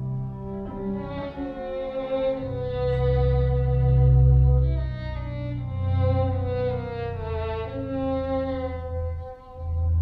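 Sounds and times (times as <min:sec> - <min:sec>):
violin sustained bowed note: 0:00.0 - 0:10.0.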